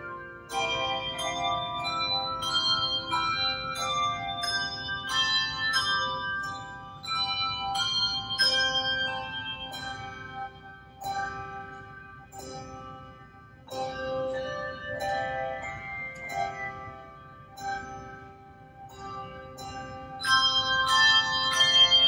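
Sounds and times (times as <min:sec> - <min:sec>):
handbell choir ringing chords: 0:00.0 - 0:22.0.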